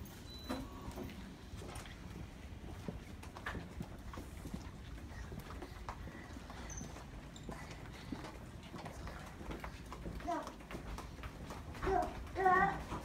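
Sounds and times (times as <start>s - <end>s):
footsteps on hard floor: 0.9s - 13.0s.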